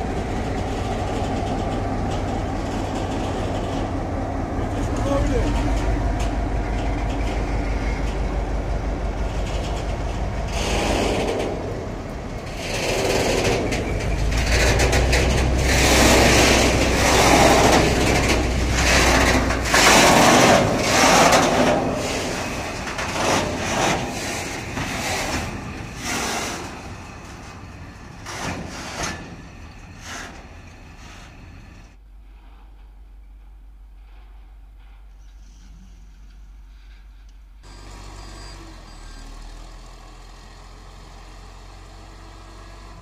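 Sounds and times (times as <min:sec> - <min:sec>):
rolling tank wagons rumbling: 0:00.0 - 0:35.6
diesel locomotive engine: 0:00.0 - 0:43.0.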